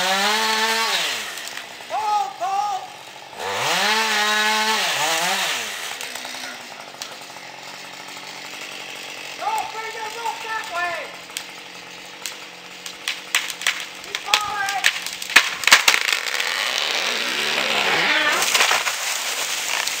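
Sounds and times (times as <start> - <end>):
chainsaw cutting wood: 0.0 - 20.0.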